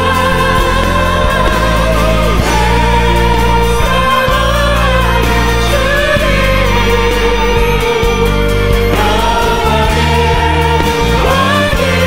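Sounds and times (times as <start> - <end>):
instrumental accompaniment with bass: 0.0 - 12.0.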